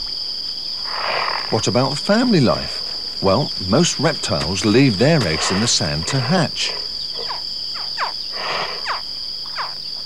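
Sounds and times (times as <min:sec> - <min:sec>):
high insect trill: 0:00.0 - 0:10.0
hatchling chirping calls: 0:02.4 - 0:09.8.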